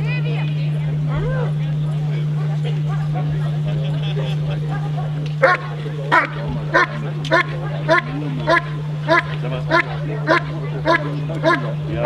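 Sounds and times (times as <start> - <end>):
dog barking: 4.9 - 11.8.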